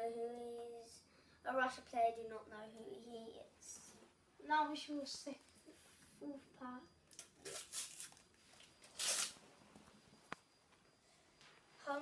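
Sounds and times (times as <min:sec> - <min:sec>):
foil packet crinkling and ripping: 0:08.9 - 0:09.4.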